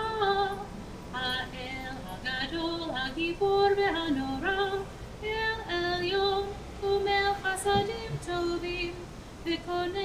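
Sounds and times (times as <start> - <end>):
woman singing slow melody: 0.0 - 10.0.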